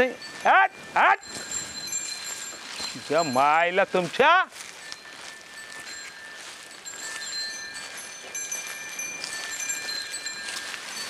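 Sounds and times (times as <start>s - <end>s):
high-pitched ringing tones: 0.0s - 11.0s.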